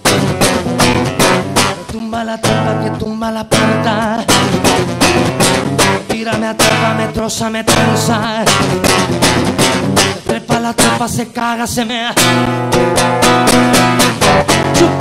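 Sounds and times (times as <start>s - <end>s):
nylon-string guitar strummed: 0.0s - 11.2s, 12.1s - 15.0s
man singing: 1.5s - 15.0s.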